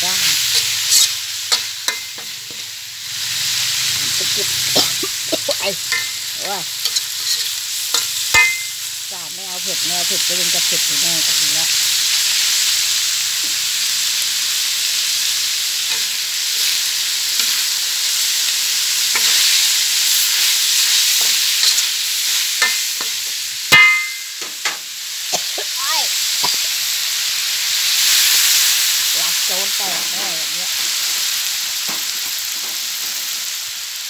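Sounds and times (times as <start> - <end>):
meat sizzling in a wok: 0.0 - 34.0
spatula scraping a pan: 0.4 - 2.7, 4.8 - 8.7
ringing metal clank: 8.4 - 8.8, 23.7 - 24.6.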